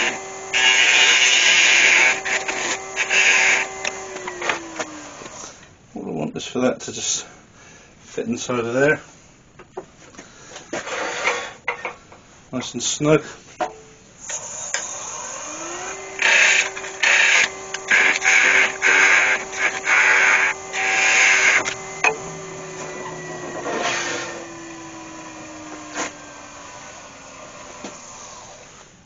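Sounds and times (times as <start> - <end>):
lathe motor whine: 0.0 - 5.5, 14.2 - 28.8
turning tool cutting wood: 0.0 - 5.5, 14.2 - 28.7.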